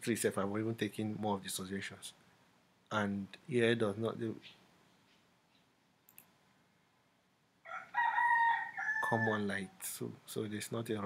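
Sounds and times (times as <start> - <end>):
faint mouse click: 5.5 - 6.4
rooster crowing: 7.6 - 9.7.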